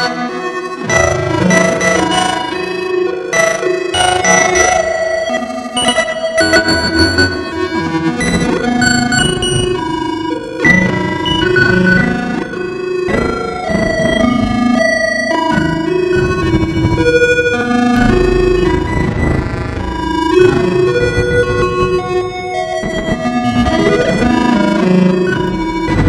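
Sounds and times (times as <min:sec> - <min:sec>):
synthesizer note sequence: 0:05.5 - 0:26.0
deep bass note: 0:15.9 - 0:24.6.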